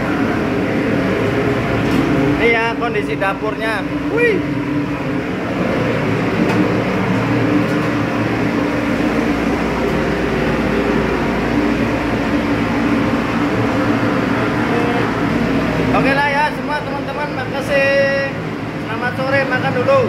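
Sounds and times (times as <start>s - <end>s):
machinery hum: 0.0s - 20.0s
ventilation air rushing: 0.0s - 20.0s.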